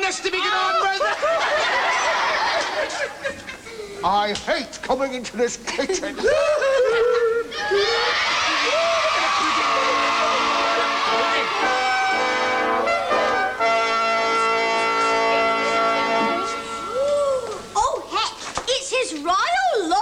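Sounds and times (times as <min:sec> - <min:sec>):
audience laughter and shouting: 0:00.0 - 0:03.6, 0:06.0 - 0:13.4
sustained musical chord: 0:09.7 - 0:17.0.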